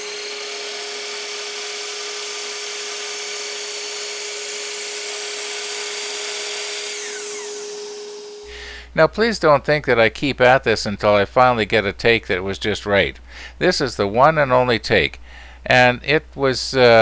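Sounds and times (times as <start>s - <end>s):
miter saw cutting wood: 0.0s - 8.5s.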